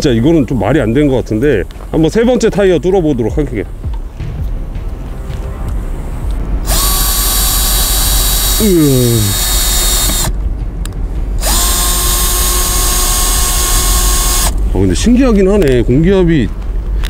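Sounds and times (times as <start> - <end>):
cordless drill whining: 6.6 - 10.3, 11.4 - 14.6.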